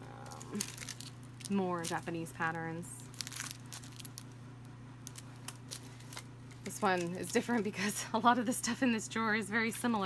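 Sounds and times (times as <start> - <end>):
plastic sleeve crinkling: 0.2 - 7.7.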